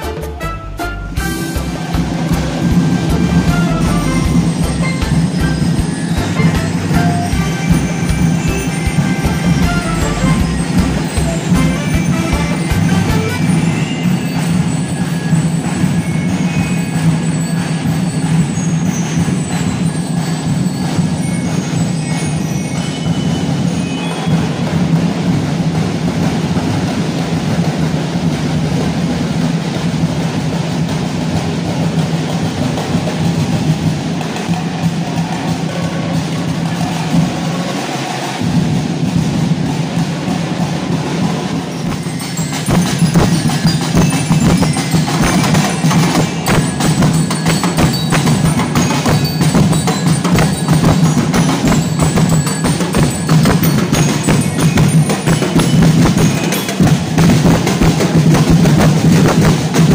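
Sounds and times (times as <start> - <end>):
live drumming: 0.0 - 59.9
music with percussion: 0.0 - 59.9.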